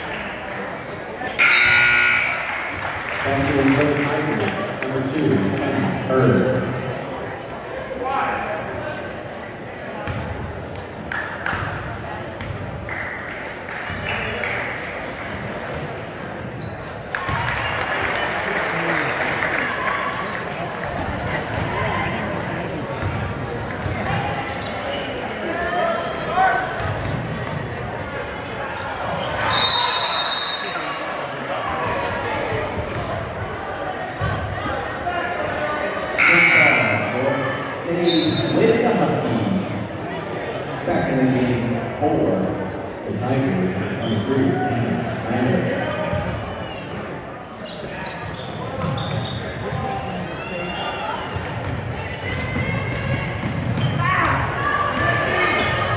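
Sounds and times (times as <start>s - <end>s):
crowd chatter and shouting: 0.0s - 55.9s.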